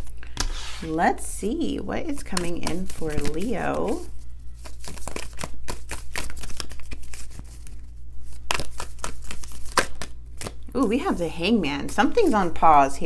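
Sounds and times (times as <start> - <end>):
steady low hum: 0.0 - 13.0
cards shuffling and snapping: 2.3 - 10.7.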